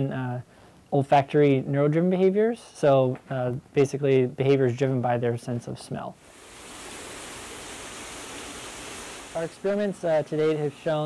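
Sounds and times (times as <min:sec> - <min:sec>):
water rushing in a tank: 0:06.2 - 0:11.0.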